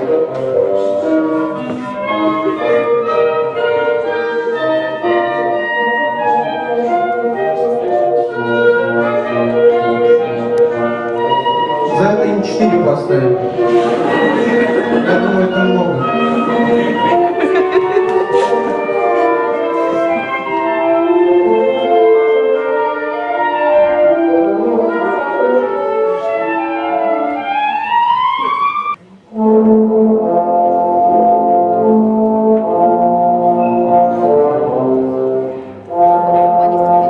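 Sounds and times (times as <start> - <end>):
brass ensemble playing chords: 0.0 - 37.0.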